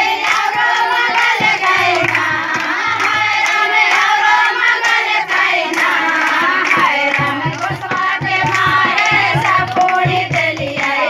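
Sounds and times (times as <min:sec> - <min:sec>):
rhythmic hand clapping: 0:00.0 - 0:11.0
women singing folk song: 0:00.0 - 0:11.0.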